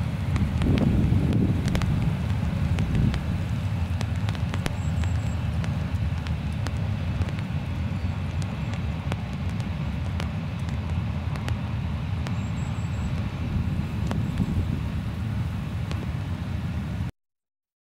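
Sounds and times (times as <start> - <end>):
diesel locomotive rumbling: 0.0 - 17.1
faint clicks: 0.3 - 11.6.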